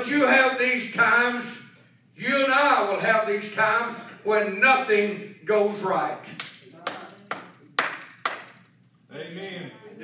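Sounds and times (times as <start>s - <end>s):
hand claps: 6.3s - 8.7s.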